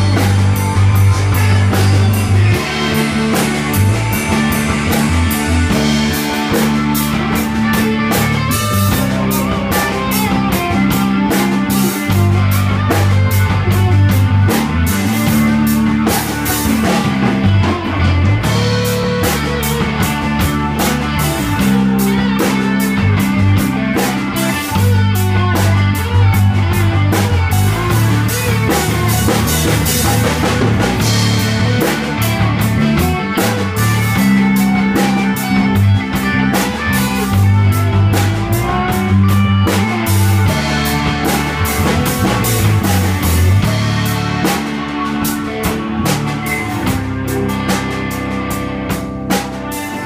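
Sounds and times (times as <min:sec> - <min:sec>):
drum kit beat: 0:00.0 - 0:50.0
electric guitars: 0:00.0 - 0:50.0.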